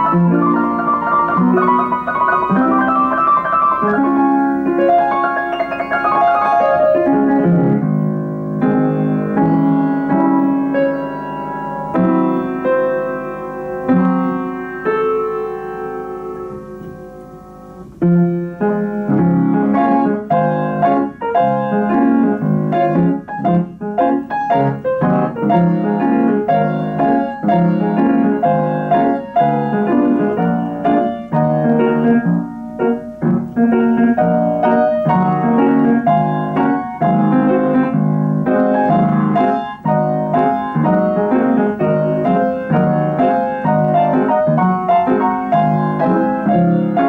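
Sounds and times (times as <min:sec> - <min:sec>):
player piano playing popular song: 0:00.0 - 0:47.0.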